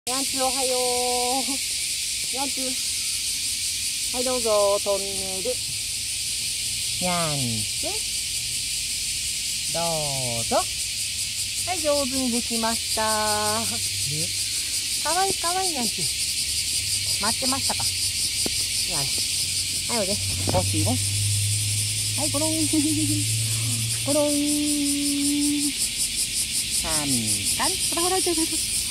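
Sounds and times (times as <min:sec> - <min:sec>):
woman calling out: 0:00.1 - 0:01.6, 0:07.0 - 0:08.0, 0:09.7 - 0:10.7, 0:11.7 - 0:14.4, 0:22.2 - 0:25.8, 0:26.8 - 0:28.6
insect chorus: 0:00.1 - 0:28.9
steady high hiss: 0:00.1 - 0:28.9.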